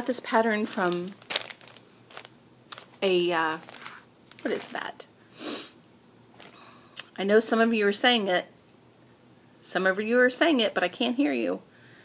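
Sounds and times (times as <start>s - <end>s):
plastic bag crinkling: 0.4s - 5.0s, 6.3s - 6.6s.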